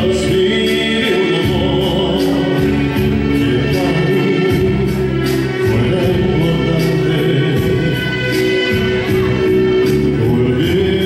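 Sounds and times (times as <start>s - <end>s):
karaoke backing track: 0.0s - 11.0s
man singing into microphone: 0.0s - 11.0s.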